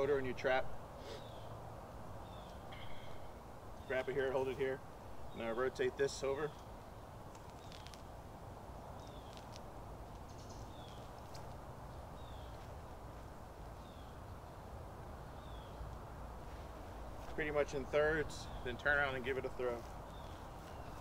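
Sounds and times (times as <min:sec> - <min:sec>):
low outdoor background hum: 0:00.0 - 0:21.0
bird chirping: 0:01.0 - 0:08.2, 0:08.8 - 0:09.6, 0:10.2 - 0:12.7, 0:13.8 - 0:14.6, 0:15.2 - 0:16.0, 0:16.9 - 0:21.0.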